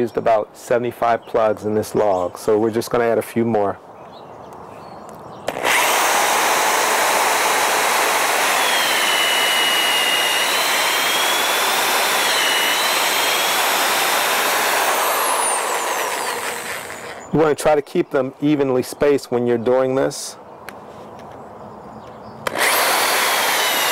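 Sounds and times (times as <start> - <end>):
electric drill boring into wood: 5.5 - 17.3, 22.5 - 23.9.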